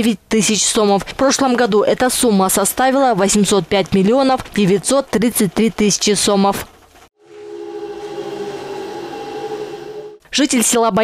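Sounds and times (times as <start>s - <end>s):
wheel balancing machine hum: 7.2s - 10.2s.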